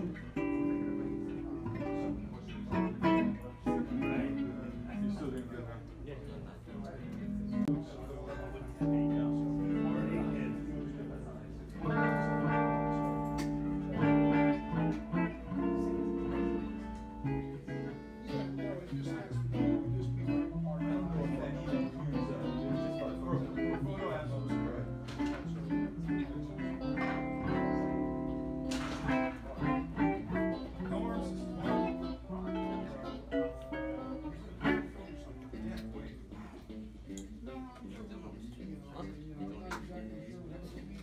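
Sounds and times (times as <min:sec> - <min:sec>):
guitar picked and strummed: 0:00.0 - 0:05.1, 0:08.7 - 0:36.0.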